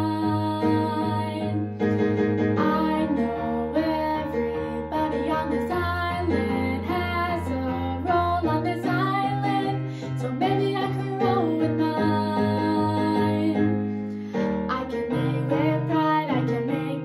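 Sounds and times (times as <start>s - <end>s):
girl singing a ballad: 0.0s - 17.0s.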